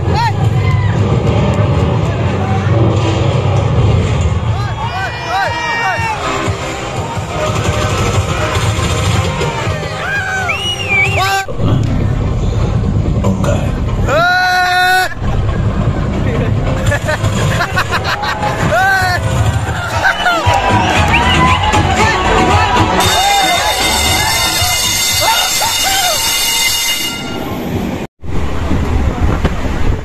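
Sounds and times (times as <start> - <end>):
explosion rumble over speakers: 0.0 - 5.1, 11.5 - 21.8.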